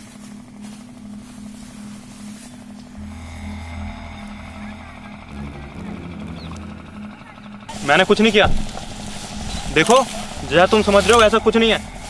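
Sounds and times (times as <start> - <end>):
deep bass drone: 0.9 - 12.0
low synth note pulsing: 1.0 - 12.0.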